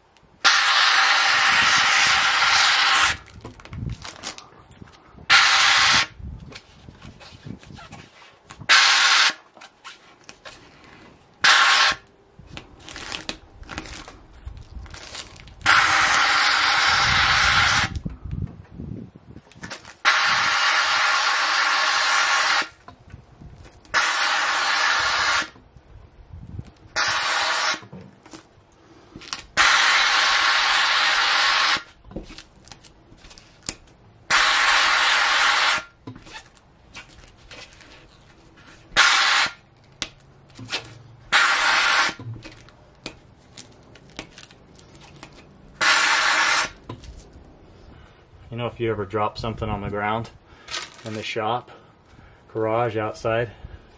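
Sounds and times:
vinyl crinkling while peeled: 3.2 - 5.1, 12.4 - 15.7, 31.9 - 34.0, 36.2 - 39.0, 42.4 - 45.5, 50.6 - 51.4.

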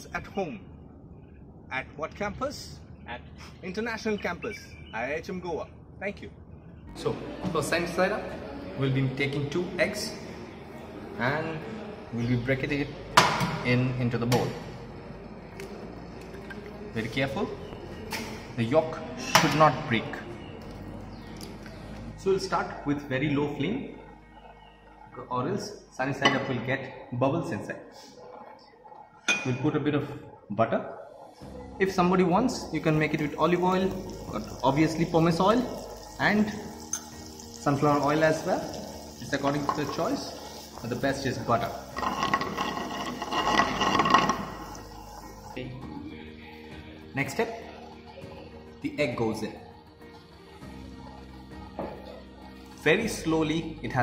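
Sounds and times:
faint background music: 0.0 - 54.0
butter sizzling in a frying pan: 33.6 - 45.6.

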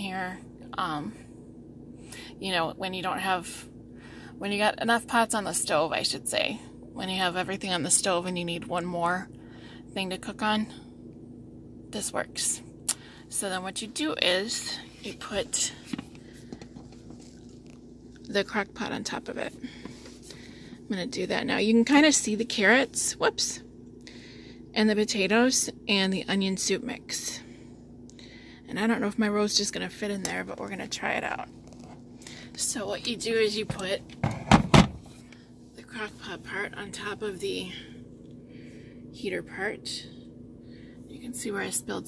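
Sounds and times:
low hum: 0.0 - 42.0
faint handling clicks and rustles: 14.5 - 18.5, 19.4 - 20.9, 30.1 - 34.3.

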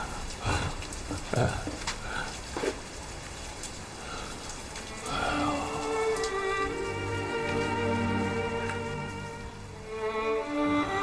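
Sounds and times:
sad string music: 4.8 - 11.0
person breathy vocal sounds: 5.1 - 5.9.

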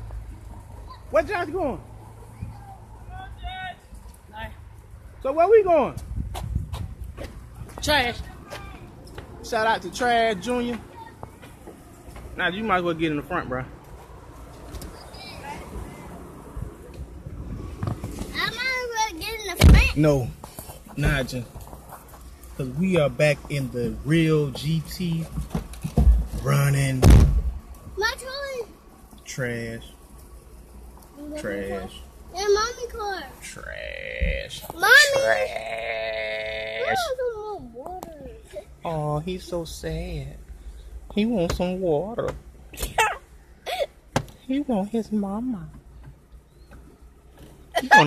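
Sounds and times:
young boy wailing: 34.2 - 37.4
child calling out: 34.8 - 38.6.

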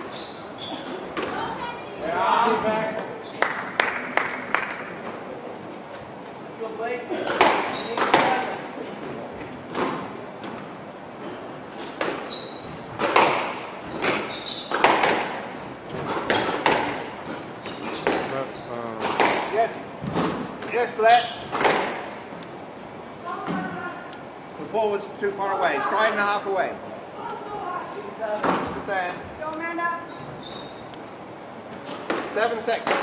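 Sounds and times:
shoes squeaking on wooden floor: 0.0 - 1.7, 7.4 - 24.5, 29.6 - 30.9
squash ball hits echoing: 7.2 - 8.6, 9.7 - 10.6, 11.8 - 20.8, 21.4 - 22.1, 31.9 - 33.0
squash ball bouncing: 7.3 - 8.6, 11.9 - 20.8, 21.4 - 22.1.

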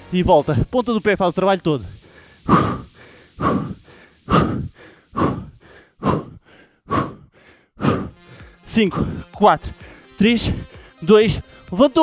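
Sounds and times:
man exhaling hard: 2.1 - 8.4.

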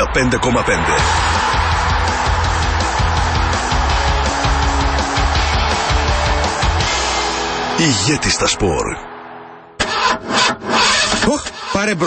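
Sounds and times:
car starter motor cranking: 9.8 - 11.9.

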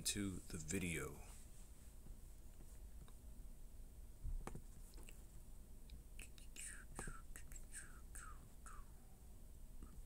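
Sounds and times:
man whispering: 6.1 - 9.2.

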